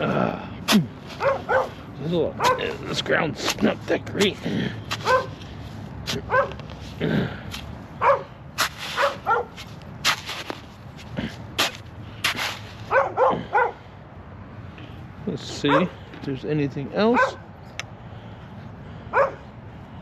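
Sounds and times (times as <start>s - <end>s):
shovel digging sandy soil: 2.3s - 7.7s, 8.6s - 12.9s
shovel scrapes and knocks: 8.6s - 10.7s, 11.6s - 12.8s.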